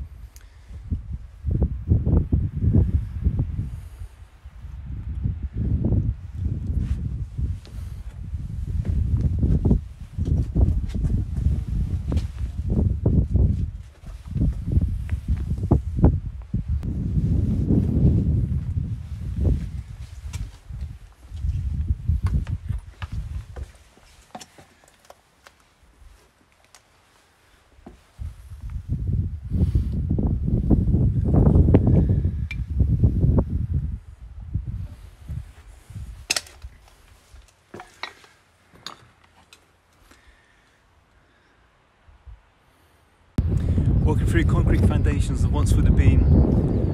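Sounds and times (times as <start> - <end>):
wind buffeting microphone: 0.0 - 23.7, 27.9 - 37.5, 43.4 - 46.9
footsteps over brick rubble: 6.8 - 16.6, 18.5 - 28.8, 34.9 - 40.1.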